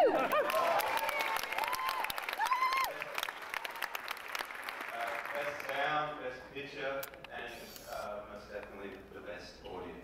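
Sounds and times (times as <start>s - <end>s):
person whooping: 0.0s - 3.0s
audience applauding and cheering: 0.0s - 6.0s.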